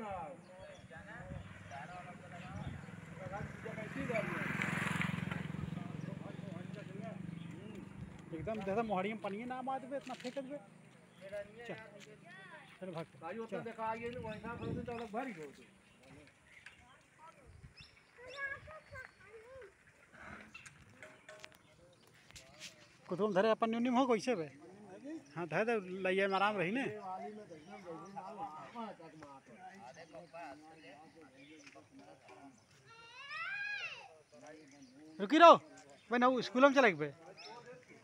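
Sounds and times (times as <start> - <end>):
distant voices: 0.0 - 23.1.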